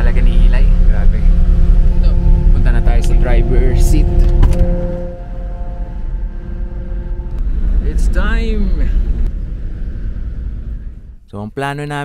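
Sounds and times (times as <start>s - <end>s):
low engine rumble: 0.0s - 11.4s.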